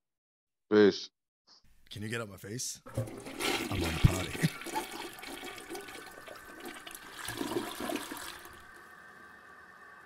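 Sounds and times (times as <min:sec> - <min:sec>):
toilet flushing: 0:02.8 - 0:10.0.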